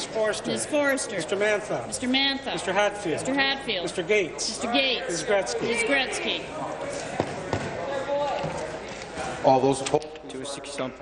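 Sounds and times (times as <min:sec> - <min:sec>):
murmur of large chamber: 0:00.0 - 0:11.0.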